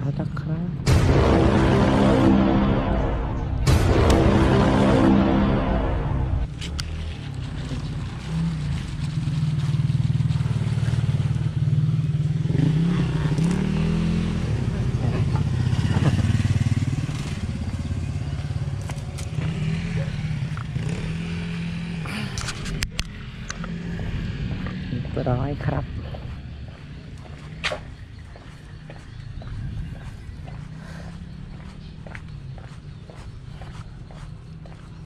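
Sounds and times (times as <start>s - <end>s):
motorcycle engine revving: 0.8s - 35.0s.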